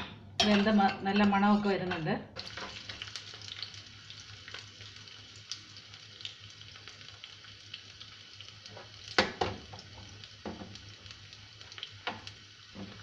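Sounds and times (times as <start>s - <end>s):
spoon stirring in a pan: 0.4s - 3.7s
food sizzling in a pan: 2.4s - 13.0s.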